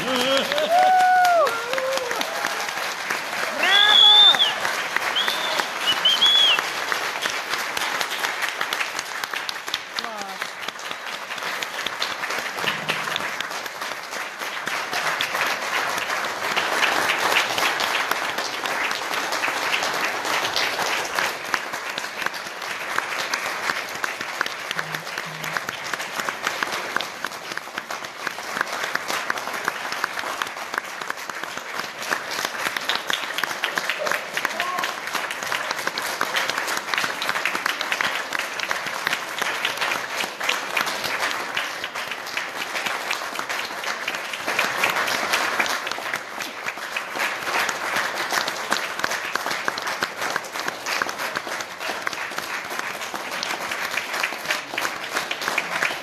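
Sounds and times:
high whooping shouts: 0.0s - 2.8s, 3.5s - 4.6s
audience applauding: 0.0s - 56.0s.

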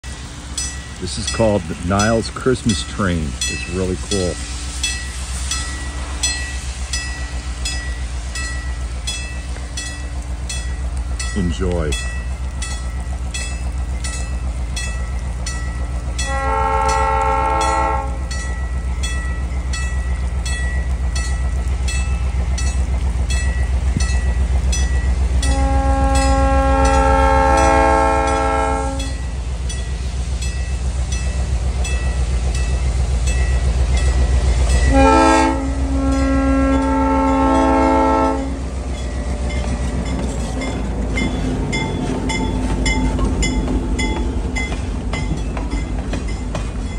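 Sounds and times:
diesel locomotive engine rumble: 0.0s - 46.9s
locomotive air horn blasts: 16.2s - 18.2s, 25.4s - 29.2s, 34.9s - 38.6s.

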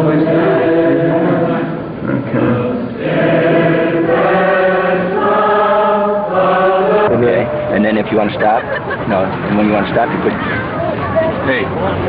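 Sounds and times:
group singing in unison: 0.0s - 7.2s.

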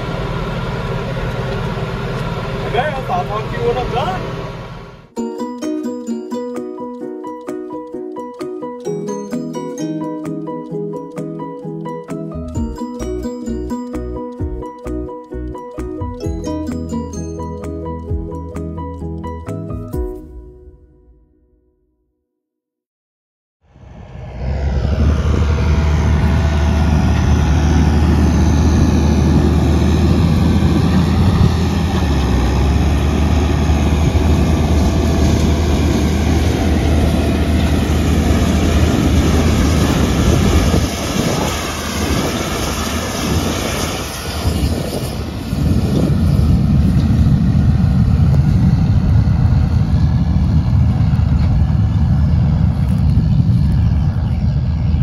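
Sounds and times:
tractor engine running: 0.0s - 5.2s, 24.3s - 55.0s.

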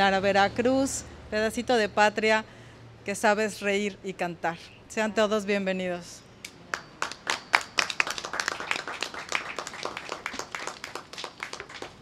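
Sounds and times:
people applauding: 6.7s - 12.0s.

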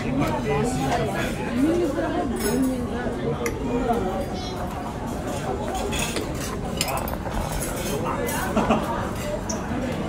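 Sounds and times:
cutlery clinking on plates: 5.1s - 9.7s.

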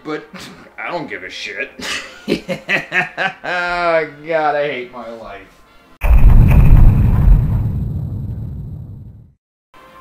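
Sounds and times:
deep explosion boom: 6.0s - 9.4s.

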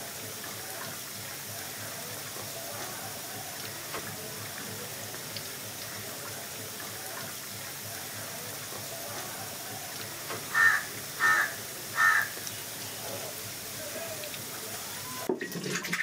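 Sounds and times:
syrup boiling with bubbling hiss: 0.0s - 16.0s
bird calling loudly: 10.4s - 12.7s.

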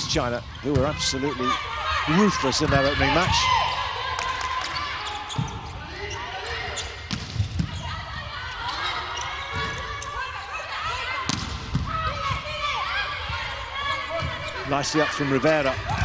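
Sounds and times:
players calling: 0.0s - 16.0s
shoes squeaking on court: 4.6s - 10.4s.

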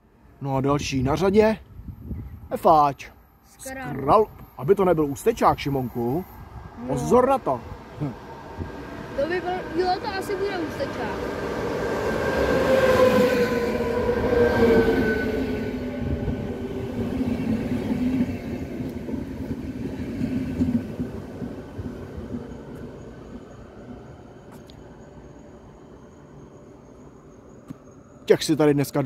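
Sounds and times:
train wheels rolling: 8.0s - 28.0s.

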